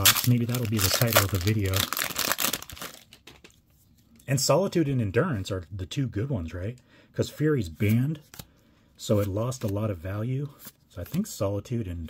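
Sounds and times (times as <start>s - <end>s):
foil wrapper crinkling: 0.0s - 3.4s.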